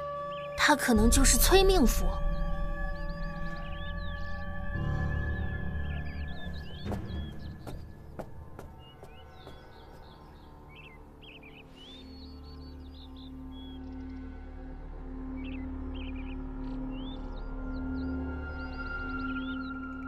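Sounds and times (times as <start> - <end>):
birds chirping: 0.0 - 14.6, 15.2 - 20.0
ambient music with low drone: 0.0 - 20.0.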